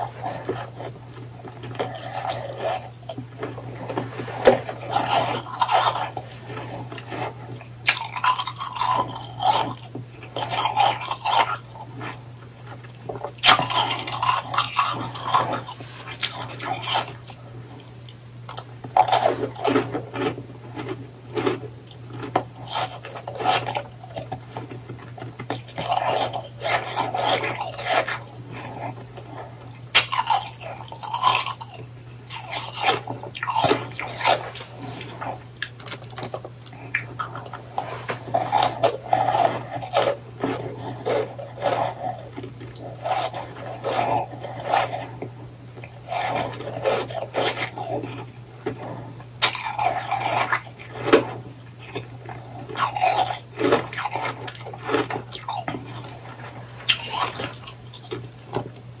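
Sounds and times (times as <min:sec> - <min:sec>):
chewing crunchy ice: 0:00.0 - 0:59.0.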